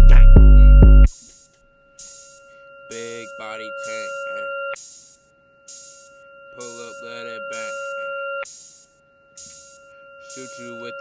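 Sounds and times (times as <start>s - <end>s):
hip-hop beat: 0.0s - 1.4s, 2.9s - 4.1s, 6.6s - 7.8s, 10.3s - 11.0s
steady synth tone: 0.0s - 11.0s
bursts of high hiss: 4.8s - 6.2s, 8.5s - 10.5s.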